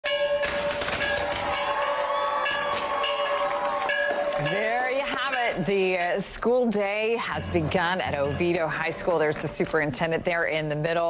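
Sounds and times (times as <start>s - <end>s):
large bell ringing: 0.0s - 9.1s.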